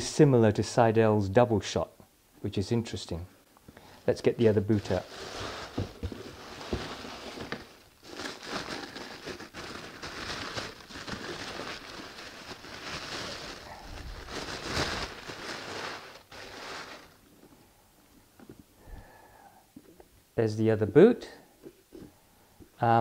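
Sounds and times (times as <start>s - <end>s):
tissue paper rustling and crinkling: 4.4s - 17.3s.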